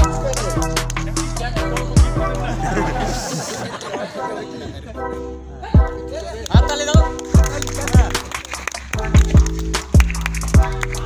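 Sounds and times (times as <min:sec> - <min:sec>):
background music: 0:00.0 - 0:11.0
people chattering: 0:00.0 - 0:11.0.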